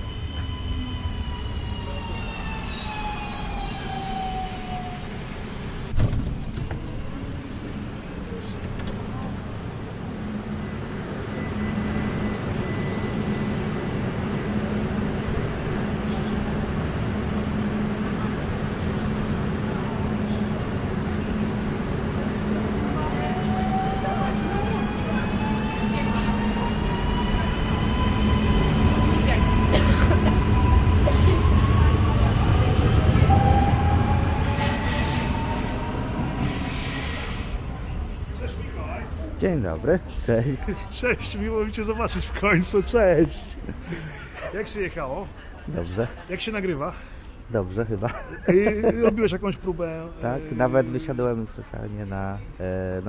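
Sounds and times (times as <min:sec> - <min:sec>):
train brakes squealing: 0:00.0 - 0:39.0
train low rumble: 0:00.0 - 0:46.5.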